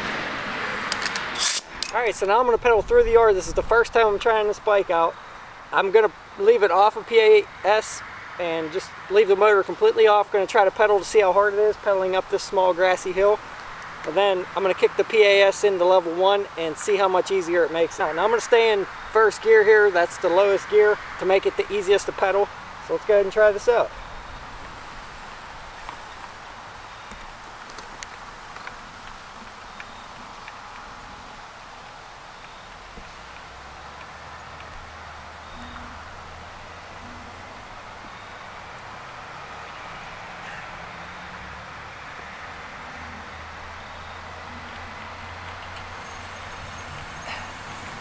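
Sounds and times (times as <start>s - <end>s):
outdoor background noise: 0.0s - 48.0s.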